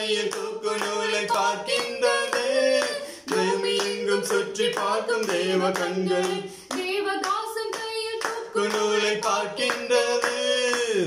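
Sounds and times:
worship singing: 0.0s - 11.0s
hands clapping in time: 0.2s - 11.0s.

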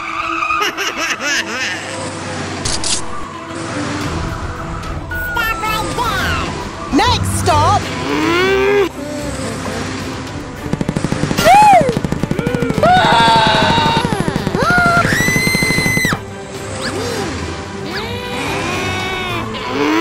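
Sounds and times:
cartoon music: 4.0s - 9.4s, 10.9s - 20.0s
fast stuttering rattle: 10.6s - 16.2s.

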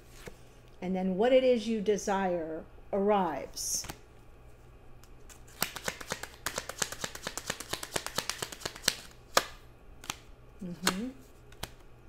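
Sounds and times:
cards being shuffled: 5.1s - 11.9s.

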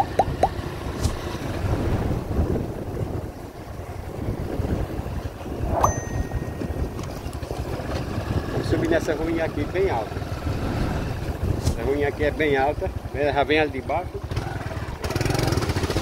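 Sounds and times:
wind rumble on microphone: 0.0s - 12.3s
motorcycle engine running: 0.0s - 16.0s
high-pitched tone: 5.7s - 7.0s.

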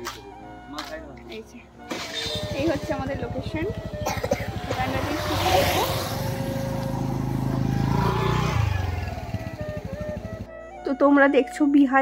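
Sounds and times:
motorcycle engine passing by: 1.8s - 10.5s.

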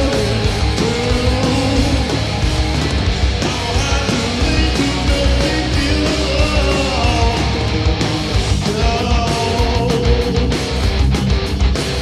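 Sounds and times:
punk band playing loud: 0.0s - 12.0s.

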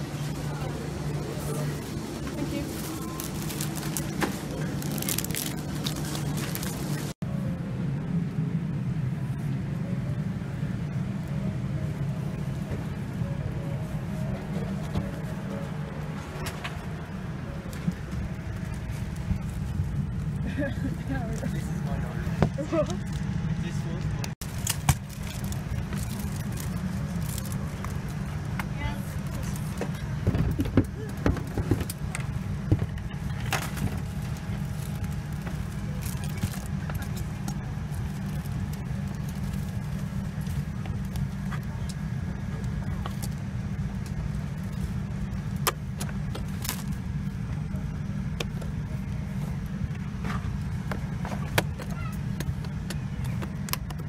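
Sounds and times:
airliner cabin rumble: 0.0s - 54.0s.

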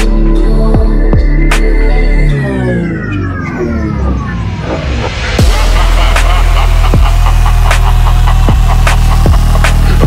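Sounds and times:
low bass drone: 0.0s - 10.0s.

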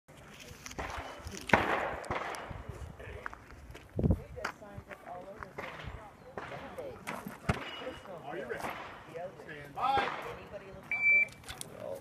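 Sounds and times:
gunshots with echo: 0.8s - 2.7s.

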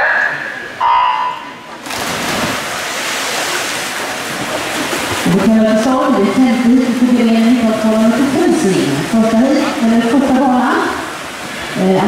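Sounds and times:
swimmers splashing: 1.5s - 12.0s
swimmers diving in: 1.6s - 12.0s.

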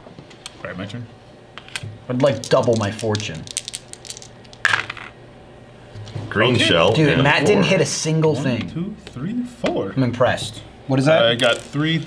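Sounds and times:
game pieces clattering on wood: 2.2s - 5.1s, 11.4s - 11.8s.

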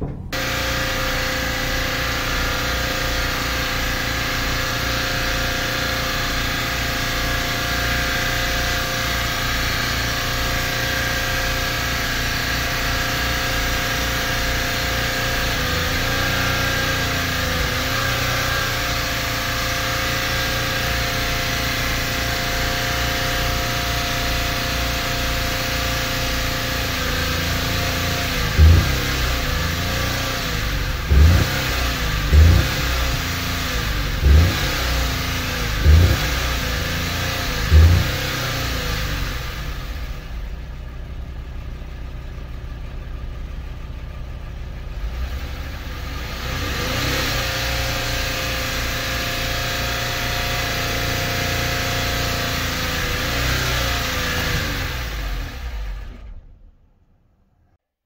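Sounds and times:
loud heavy thumps: 0.0s - 0.5s
engine at high revs: 0.0s - 40.6s, 45.0s - 56.5s.

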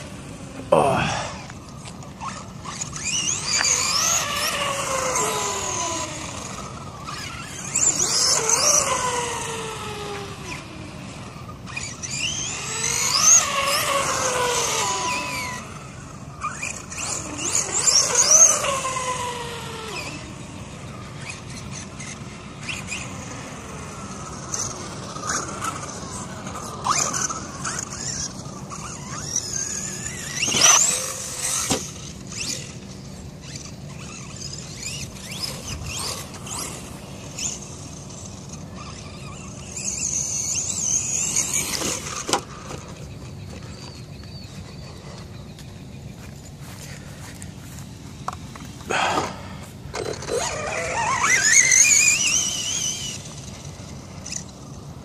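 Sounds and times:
electric toy truck motor whining: 0.0s - 55.0s.

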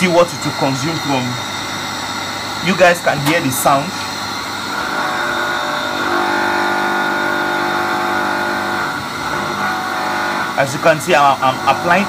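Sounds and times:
electric motor humming: 0.0s - 12.0s.

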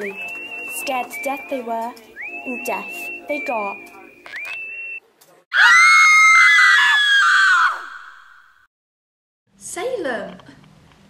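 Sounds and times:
high whistled note sliding up: 0.0s - 5.0s
girl screaming: 5.5s - 8.3s.

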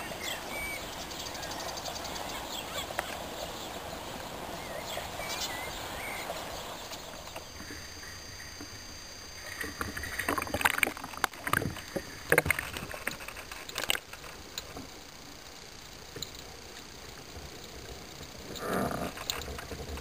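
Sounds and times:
faint chirps: 0.0s - 10.5s
water splashing and sloshing: 0.0s - 15.0s
steady hiss: 0.0s - 20.0s.

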